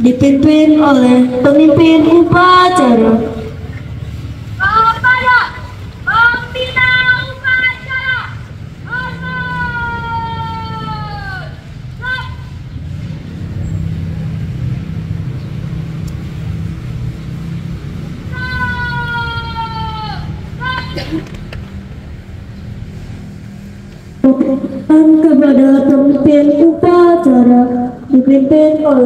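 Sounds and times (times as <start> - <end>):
steady low rumble: 0.0 - 9.9
boy shouting drill commands: 4.6 - 12.5, 18.3 - 21.0.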